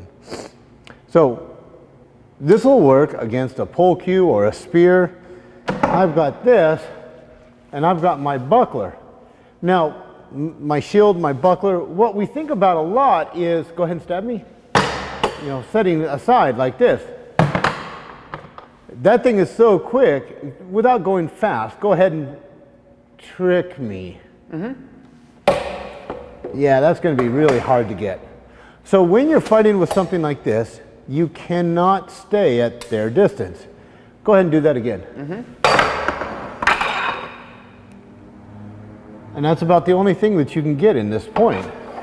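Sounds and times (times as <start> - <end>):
wooden spear clashing on plastic chair: 25.5 - 26.4.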